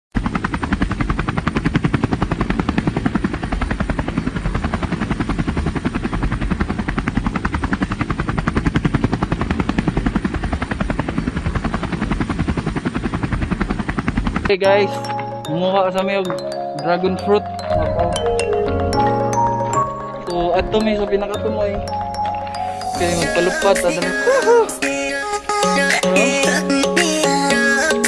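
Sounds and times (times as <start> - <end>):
rotor blades chopping: 0.2 - 14.5.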